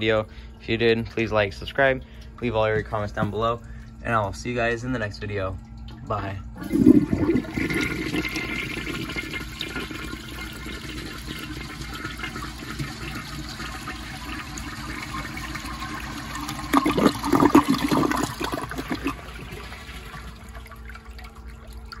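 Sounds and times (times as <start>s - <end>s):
toilet flushing: 5.3s - 22.0s.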